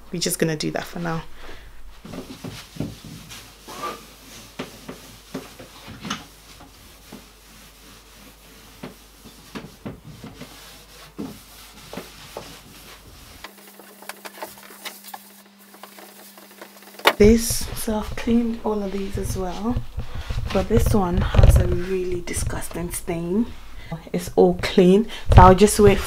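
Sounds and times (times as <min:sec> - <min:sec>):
cloth wiping wood: 0:02.0 - 0:20.8.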